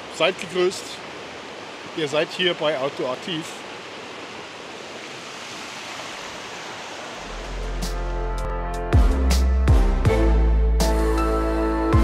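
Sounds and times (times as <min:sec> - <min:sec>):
fast-flowing river rushing: 0:00.0 - 0:08.1
low sustained background music: 0:07.2 - 0:12.0.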